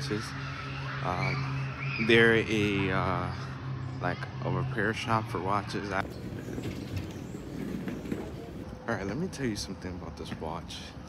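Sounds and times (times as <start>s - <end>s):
city street traffic rumble: 0.0s - 11.0s.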